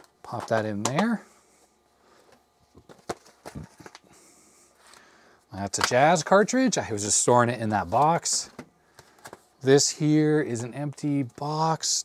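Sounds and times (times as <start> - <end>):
faint room hiss: 0.0 - 12.0.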